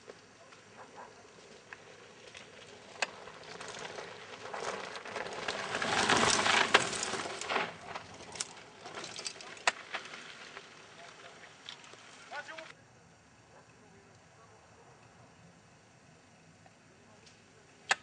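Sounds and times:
bike tyres on dirt trail: 0.0 - 12.8.

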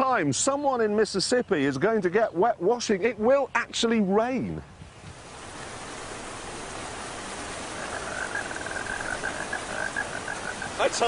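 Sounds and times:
rain falling on woodland: 0.0 - 11.0
high pulsing animal call: 7.6 - 11.0.

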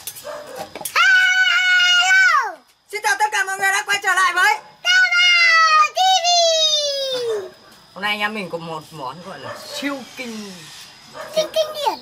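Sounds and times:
child yelling: 0.9 - 2.7, 4.8 - 7.6, 11.2 - 12.0.

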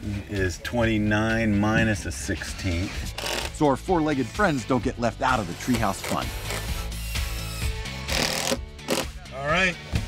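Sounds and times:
background music: 0.0 - 10.0
saw cutting wood: 3.1 - 3.6, 5.2 - 9.1.

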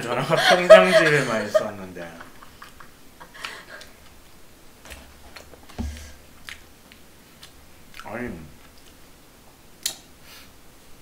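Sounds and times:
dull thump: 5.8 - 6.1.

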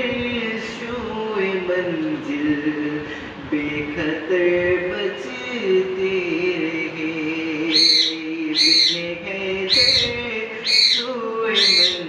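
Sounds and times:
man singing held note: 5.4 - 12.0.

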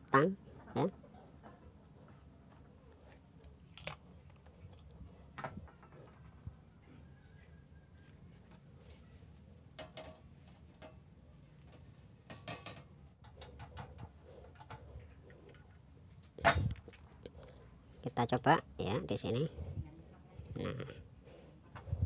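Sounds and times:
small metal clicks and taps: 11.7 - 14.8.

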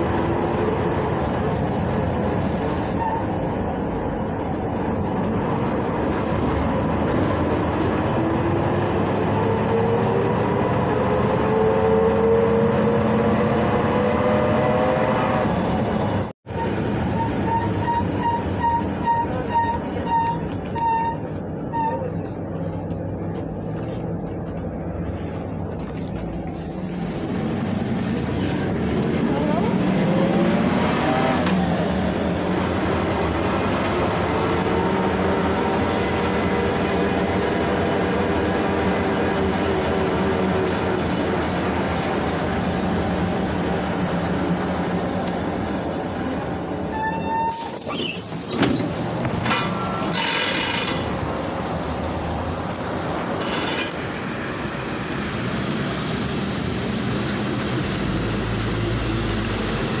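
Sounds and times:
bus engine and gearbox whine: 0.0 - 60.0
bus doors hissing and rattling: 39.7 - 51.4.

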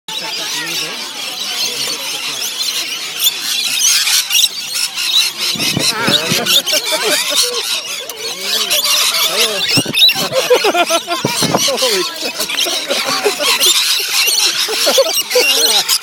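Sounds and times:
lorikeets screeching and chattering: 0.1 - 16.0.

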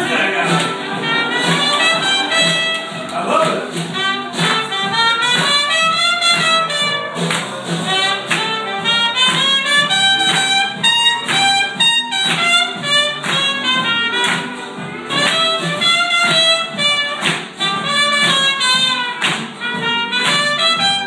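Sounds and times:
band strumming rhythm: 0.0 - 21.0
bass: 0.0 - 21.0
trumpet solo: 0.0 - 21.0.

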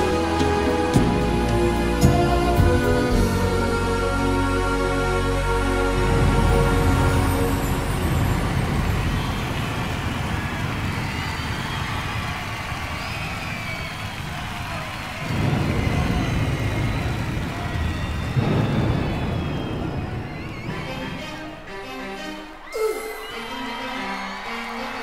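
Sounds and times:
audience cheering and whistling: 6.1 - 21.7, 22.5 - 25.0.

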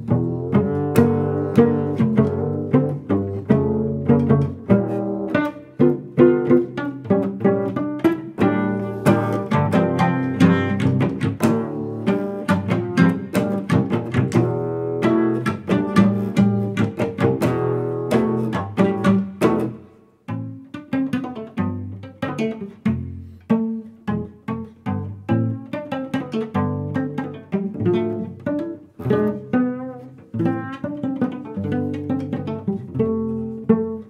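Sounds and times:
plucked cello notes: 0.0 - 34.0.

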